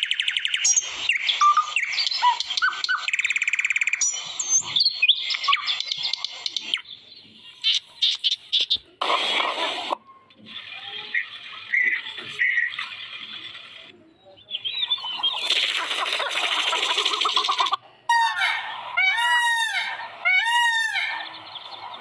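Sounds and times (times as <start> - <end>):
birds chirping and trilling: 0.0 - 9.0, 10.0 - 22.0.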